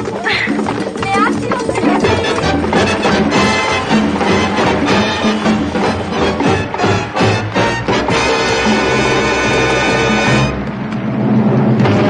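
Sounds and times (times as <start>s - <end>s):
orchestral music: 1.7s - 12.0s
sharp orchestral hit: 2.4s - 12.0s.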